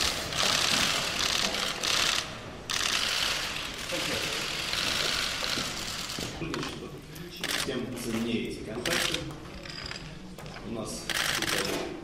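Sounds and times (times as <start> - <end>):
camera shutters clicking: 8.8 - 9.3, 11.1 - 11.9.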